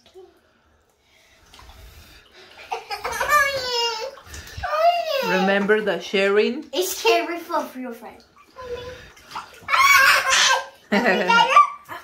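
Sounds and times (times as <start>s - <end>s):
water sloshing in a bathtub: 0.0s - 12.0s
child laughing: 2.7s - 5.4s, 9.7s - 12.0s
child squealing: 9.7s - 10.7s.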